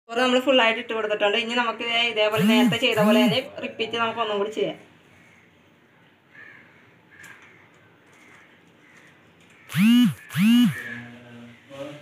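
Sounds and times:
crow cawing: 5.1 - 5.6, 6.3 - 11.1.

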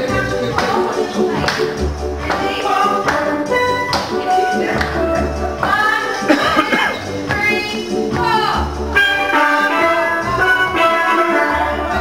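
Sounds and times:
low bass notes: 1.2 - 9.3.

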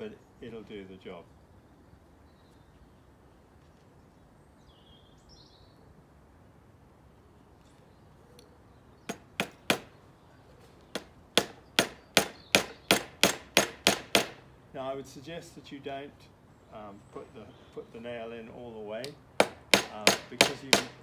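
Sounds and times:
hammer tapping nail into wood: 10.9 - 14.4, 19.4 - 21.0.

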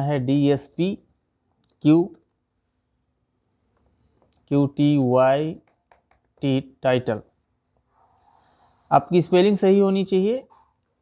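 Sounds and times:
computer keyboard keystrokes: 1.6 - 2.6, 3.7 - 4.5, 5.5 - 6.6.

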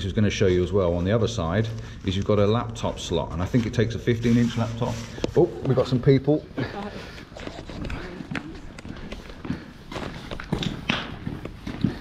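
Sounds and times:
footsteps on brick path: 0.6 - 12.0.

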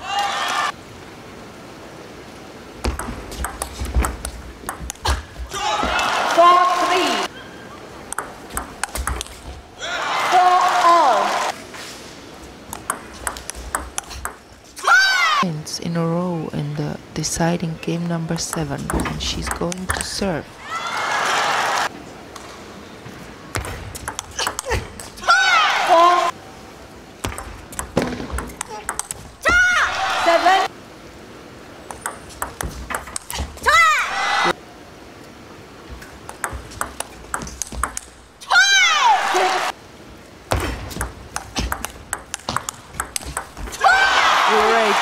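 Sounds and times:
ping pong ball clicking: 2.9 - 5.0, 8.1 - 9.4, 12.7 - 14.4, 23.6 - 24.7, 27.2 - 29.2, 31.9 - 33.3, 36.2 - 38.2, 41.0 - 43.6
crowd applause: 20.7 - 21.9.

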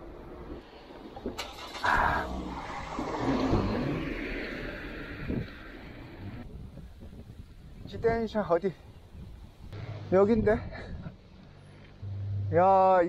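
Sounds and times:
vehicle passing rushing noise: 1.0 - 6.4.

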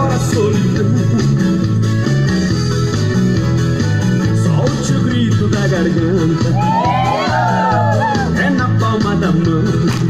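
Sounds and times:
upbeat country song instrumental: 0.0 - 10.0.

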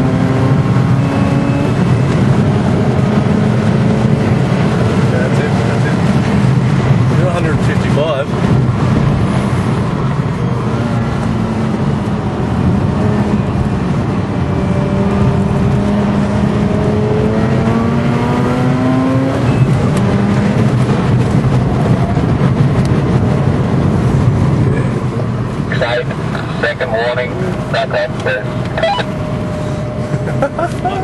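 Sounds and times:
wind and road noise: 0.0 - 31.0.

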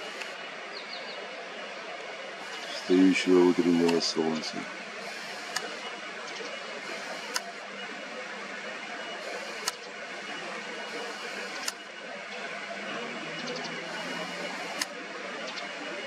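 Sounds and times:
sharp click: 5.5 - 5.7.

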